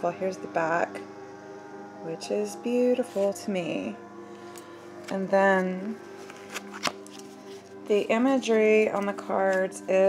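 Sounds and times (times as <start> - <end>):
soft background music: 0.0 - 10.0
cards being handled: 6.2 - 7.7.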